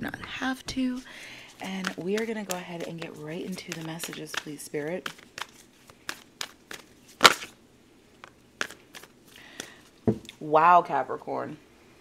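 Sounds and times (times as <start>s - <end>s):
cards clicking and slapping: 1.7s - 7.6s, 8.2s - 9.8s.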